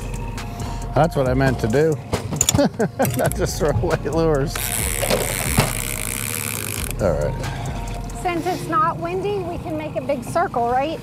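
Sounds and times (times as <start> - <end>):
outboard motor running: 4.5 - 11.0.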